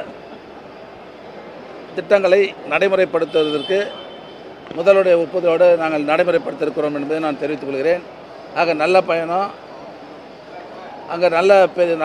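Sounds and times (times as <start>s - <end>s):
crowd murmur in a hall: 0.0s - 2.0s, 9.4s - 11.7s.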